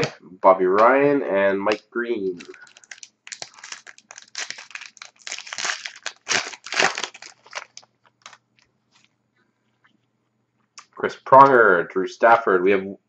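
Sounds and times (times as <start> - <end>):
wrapper tearing and crinkling: 2.4 - 9.1.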